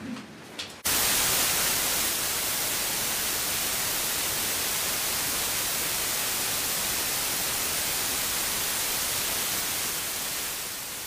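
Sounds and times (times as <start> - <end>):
white noise hiss: 0.0 - 11.0.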